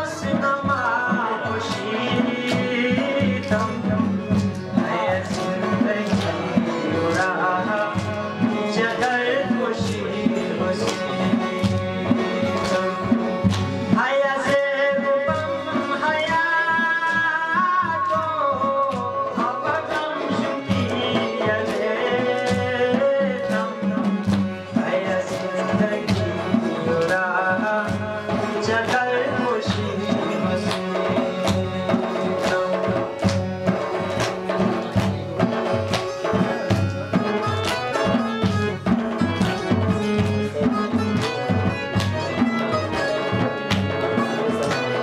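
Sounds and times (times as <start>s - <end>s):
harmonium: 0.0s - 45.0s
man singing: 0.0s - 45.0s
steady drum beat: 0.0s - 45.0s
plucked sitar: 19.1s - 45.0s.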